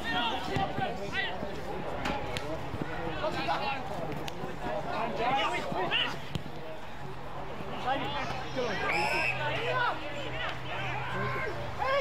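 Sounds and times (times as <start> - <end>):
spectators shouting encouragement: 7.8 - 12.0.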